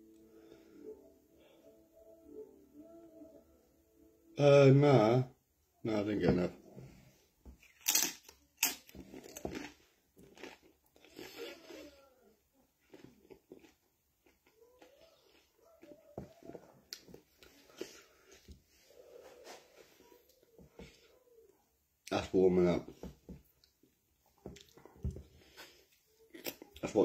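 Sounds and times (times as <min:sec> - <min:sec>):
man chewing with lip smacks: 0:23.4 - 0:25.0.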